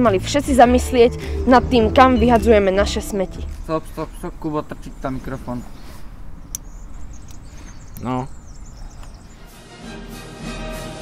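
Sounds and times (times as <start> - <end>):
low steady rumble: 0.0 - 6.5
faint high chirping: 0.6 - 9.5.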